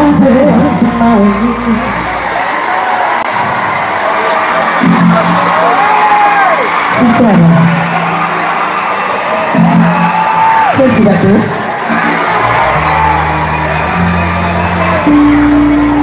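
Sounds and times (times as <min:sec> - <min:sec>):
crowd cheering and whooping: 0:00.0 - 0:16.0
deep bass: 0:12.2 - 0:16.0.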